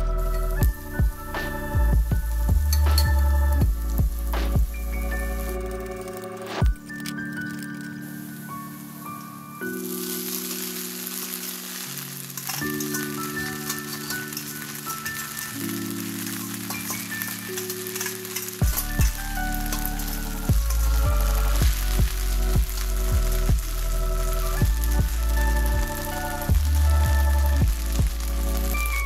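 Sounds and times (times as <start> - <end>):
background music with bass: 0.0 - 11.3, 12.2 - 29.0
food sizzling in a frying pan: 7.3 - 29.0.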